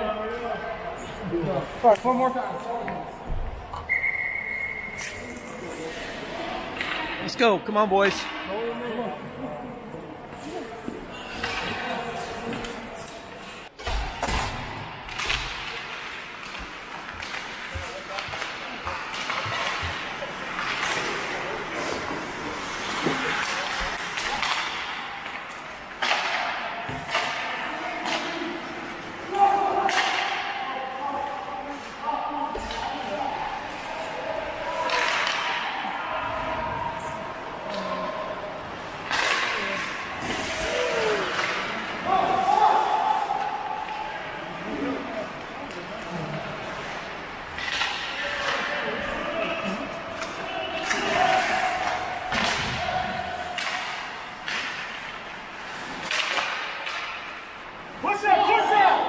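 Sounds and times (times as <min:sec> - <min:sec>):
hockey sticks and puck clacking: 0:04.9 - 0:08.5, 0:10.9 - 0:59.0
skates scraping ice: 0:15.6 - 0:29.4, 0:38.6 - 0:43.3
players shouting: 0:33.1 - 0:45.4, 0:48.1 - 0:54.4.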